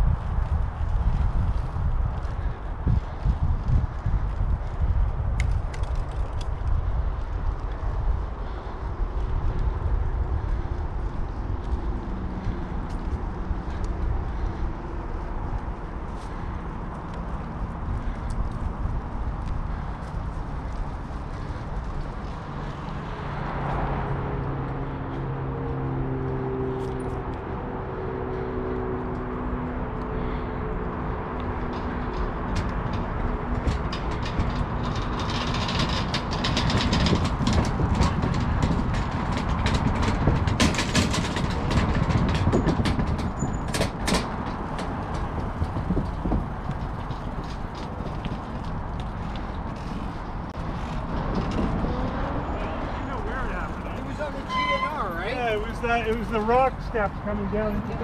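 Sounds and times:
wind on microphone: 0.0 - 25.0, 27.2 - 53.0
bicycle rolling rumble: 0.0 - 58.0.

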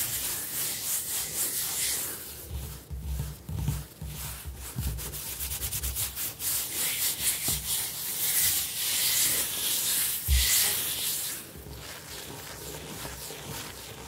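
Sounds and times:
hands scratching on countertop: 0.0 - 14.0.

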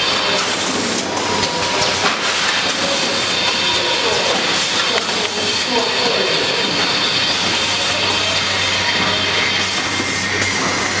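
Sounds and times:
packing machine running: 0.0 - 11.0.

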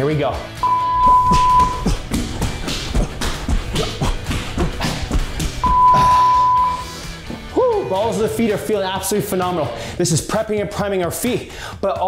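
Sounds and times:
background music with steady beat: 0.0 - 12.0
interval timer beep: 0.6 - 1.8, 5.6 - 6.9.

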